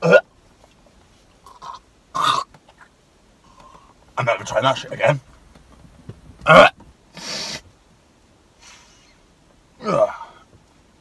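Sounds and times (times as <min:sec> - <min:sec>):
man breathing through nose: 0:07.1 - 0:07.7.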